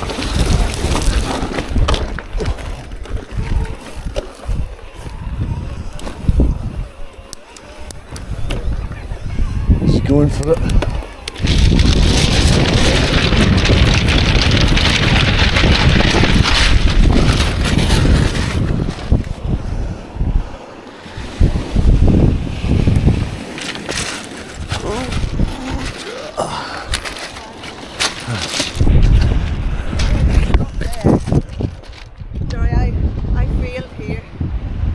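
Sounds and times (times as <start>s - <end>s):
bicycle tyres rolling on pebbles: 0.0s - 9.2s, 9.9s - 32.4s
wind rumbling on microphone: 0.0s - 34.9s.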